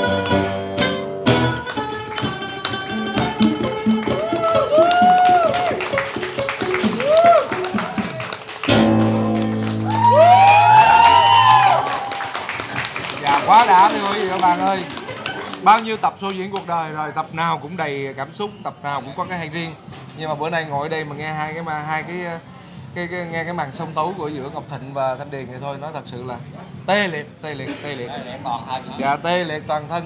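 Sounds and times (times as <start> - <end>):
plucked lute notes: 0.0 - 10.0
acoustic guitar: 0.0 - 10.4
group of people talking: 11.7 - 30.0.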